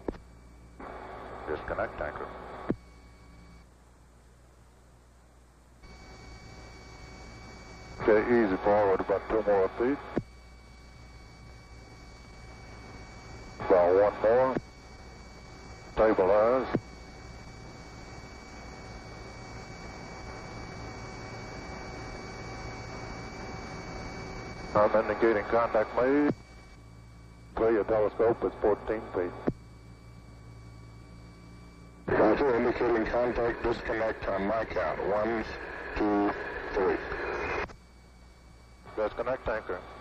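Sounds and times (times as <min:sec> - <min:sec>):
radio click: 0:00.0 - 0:00.3, 0:29.0 - 0:29.6
faint high steady tones: 0:00.0 - 0:40.0
radio hiss and hum: 0:00.0 - 0:40.0
radio intercom hiss: 0:00.8 - 0:02.7, 0:08.0 - 0:10.2, 0:13.6 - 0:14.6, 0:16.0 - 0:16.8, 0:24.7 - 0:26.4, 0:27.6 - 0:29.5, 0:32.0 - 0:37.7, 0:38.8 - 0:40.0.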